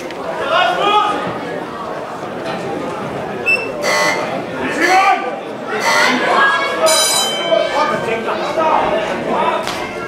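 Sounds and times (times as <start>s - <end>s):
crowd chatter in a large hall: 0.0s - 10.0s
timekeeper's bell ringing: 6.8s - 8.3s.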